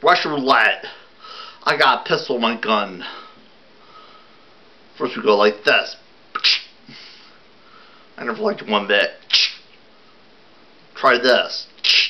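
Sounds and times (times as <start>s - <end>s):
faint breathy hiss: 0.8s - 1.8s, 2.7s - 10.4s, 11.0s - 12.0s.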